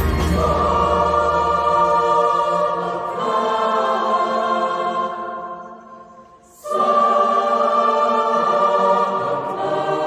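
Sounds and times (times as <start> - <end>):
drums and bass: 0.0 - 0.8
mixed choir singing: 0.0 - 10.0.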